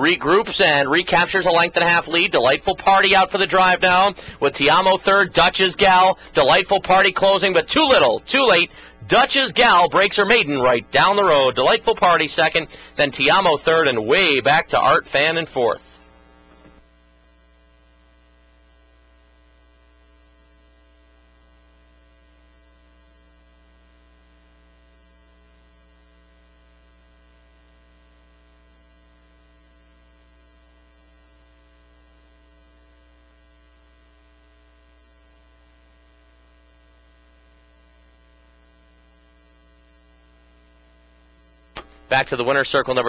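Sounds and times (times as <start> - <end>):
faint electrical mains hum: 0.0 - 43.0.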